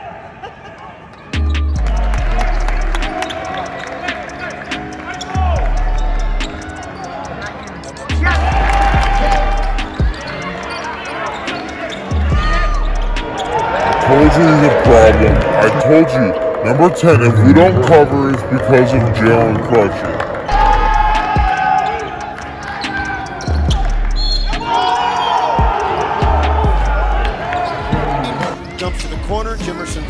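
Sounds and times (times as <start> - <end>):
rap music with deep bass: 1.4 - 16.2, 20.5 - 30.0.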